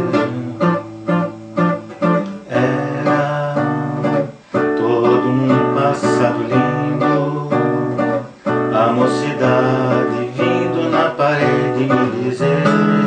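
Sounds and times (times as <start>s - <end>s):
tango acoustic guitar: 0.0s - 13.0s.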